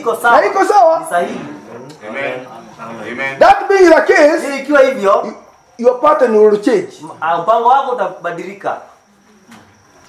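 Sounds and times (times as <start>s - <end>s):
man's voice: 2.3s - 8.8s.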